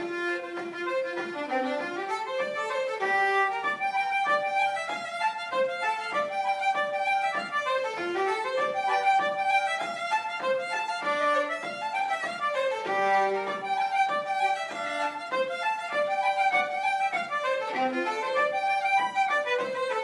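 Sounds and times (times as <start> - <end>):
concertina playing a reel: 0.0 - 20.0
fiddle playing a reel: 0.0 - 20.0.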